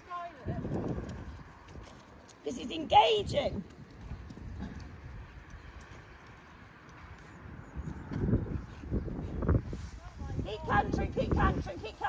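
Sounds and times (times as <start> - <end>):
horse trotting on sand: 0.0 - 9.4.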